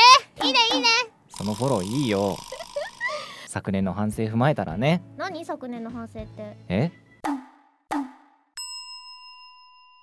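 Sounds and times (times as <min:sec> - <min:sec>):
bell-like ding: 0:08.6 - 0:10.0.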